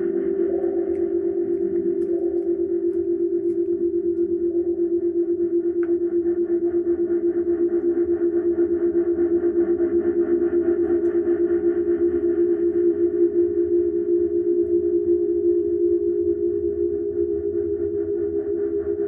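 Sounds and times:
distorted echoing haze: 0.0s - 4.8s
pulsing electronic drone: 0.0s - 19.0s.

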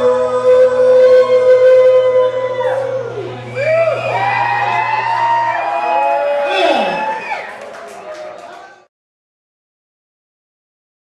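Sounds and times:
man singing a long rock note: 0.0s - 3.5s.

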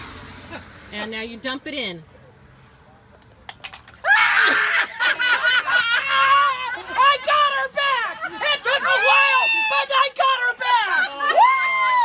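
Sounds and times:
person shrieking: 4.1s - 4.8s.

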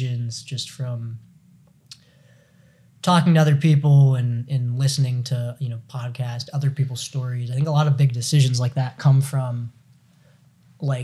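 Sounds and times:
man speaking: 0.0s - 1.3s, 3.0s - 9.8s, 10.8s - 11.0s.

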